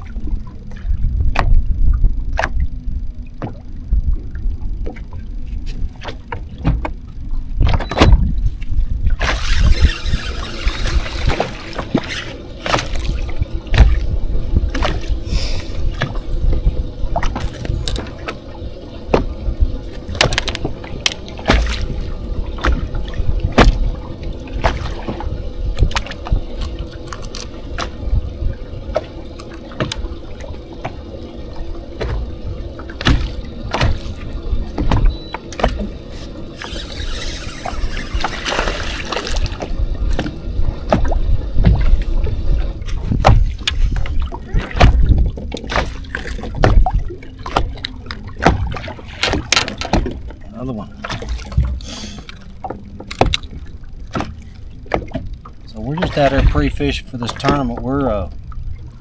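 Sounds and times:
wind rumbling on microphone: 0.0 - 51.9
water lapping against boat hull: 0.0 - 59.0
knocks on boat hull: 33.0 - 34.1.

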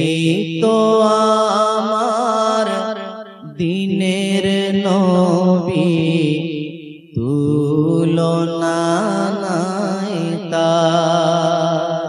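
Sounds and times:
man singing devotional song: 0.0 - 12.0.

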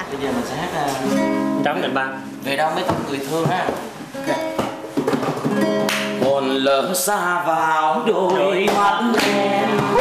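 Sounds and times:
acoustic guitar plucked: 0.2 - 10.0.

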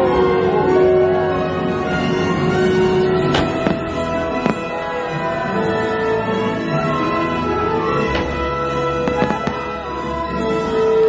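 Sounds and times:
music: 0.0 - 11.0
fireworks bursting: 3.0 - 5.5, 7.8 - 11.0.

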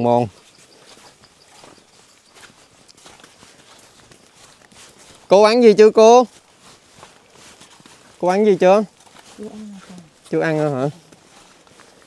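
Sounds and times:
footsteps on stony dirt trail: 0.0 - 12.0.

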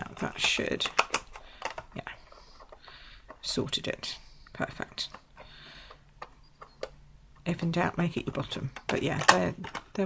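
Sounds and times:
plastic box clicks and crinkles: 0.0 - 3.4.

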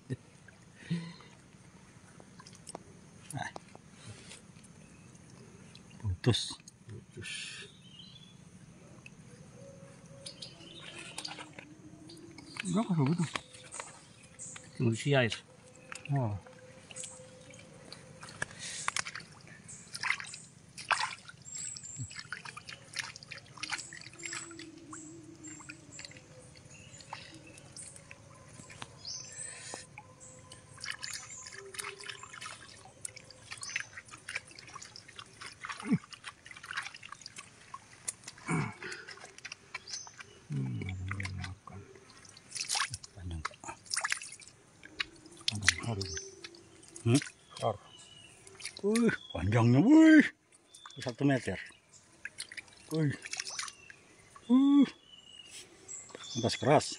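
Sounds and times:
water drips and small splashes: 0.0 - 7.2, 8.6 - 9.4, 10.0 - 56.9
wet mud squelches: 10.2 - 56.7.

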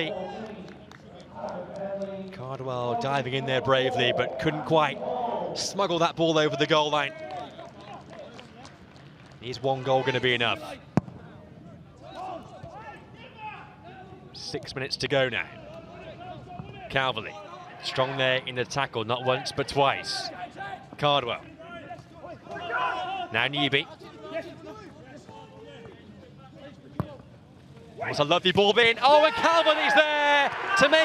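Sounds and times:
faint shouts of players: 21.6 - 23.4.

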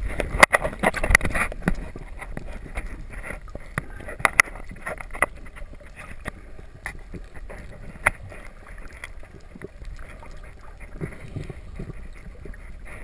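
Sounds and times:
muffled underwater water movement: 0.0 - 13.0
sharp underwater clicks: 0.0 - 13.0.

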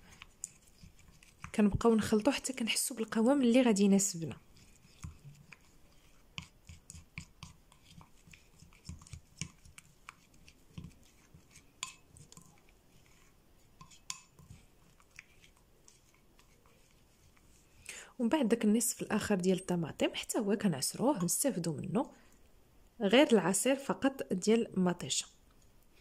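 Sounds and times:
spoon scraping a bowl: 0.0 - 17.8.

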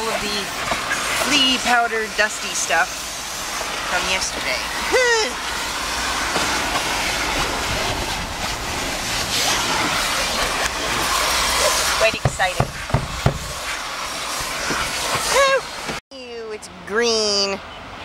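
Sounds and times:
vacuum cleaner running: 0.0 - 16.0
nozzle knocking against car interior: 12.2 - 13.6.

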